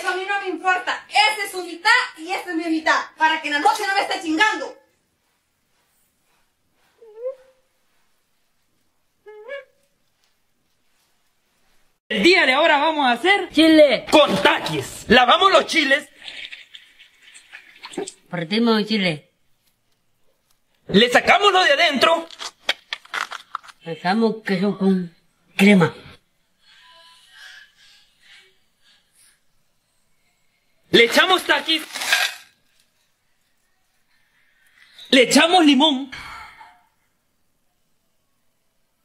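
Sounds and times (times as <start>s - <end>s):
person speaking: 30.9s - 32.4s.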